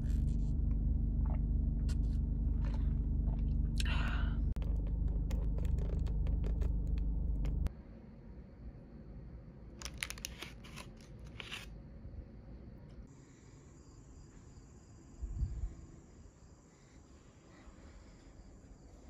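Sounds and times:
paper bag crinkling: 0:09.8 - 0:11.7.

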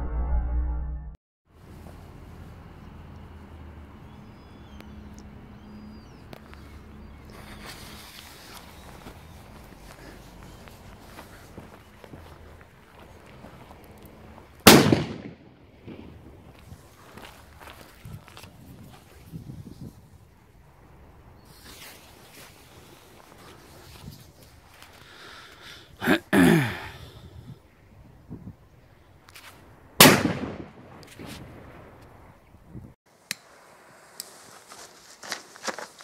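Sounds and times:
firecracker bang: 0:14.7 - 0:16.2, 0:30.0 - 0:31.4.

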